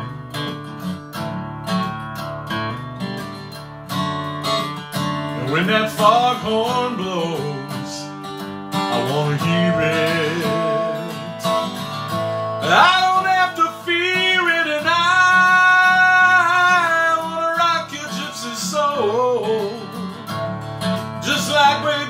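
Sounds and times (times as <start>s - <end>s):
acoustic guitar backing track: 0.0s - 22.0s
man singing long notes: 5.4s - 8.1s, 8.9s - 11.6s, 12.6s - 19.9s.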